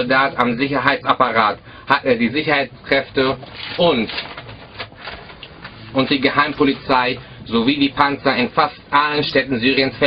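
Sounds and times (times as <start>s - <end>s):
paper rustling: 3.4s - 5.8s.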